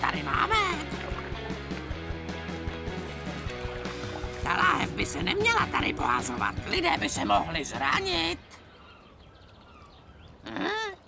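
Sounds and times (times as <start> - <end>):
person speaking: 4.3 - 8.5.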